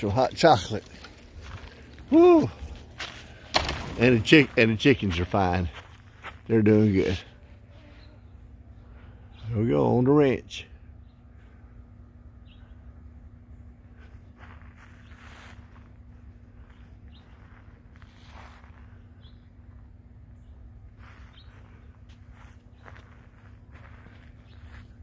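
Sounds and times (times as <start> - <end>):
footsteps on frozen ground: 0.0 - 8.1, 13.8 - 25.0.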